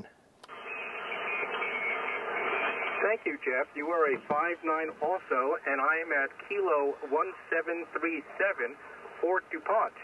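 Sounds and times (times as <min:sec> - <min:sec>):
radio receiver static hiss: 0:00.0 - 0:10.0.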